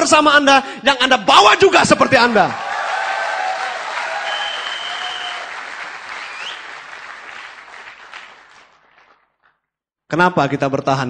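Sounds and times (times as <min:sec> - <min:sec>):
audience applauding: 0:02.2 - 0:09.5.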